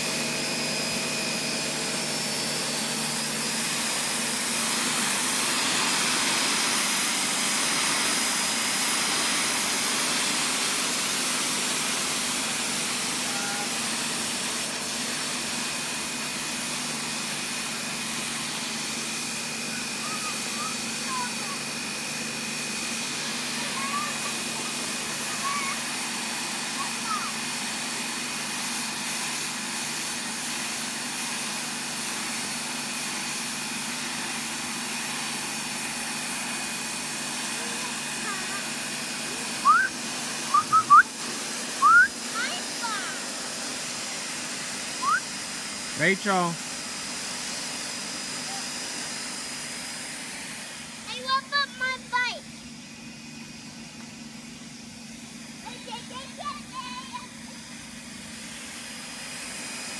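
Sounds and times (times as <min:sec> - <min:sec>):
pressure washer running: 0:00.0 - 0:59.9.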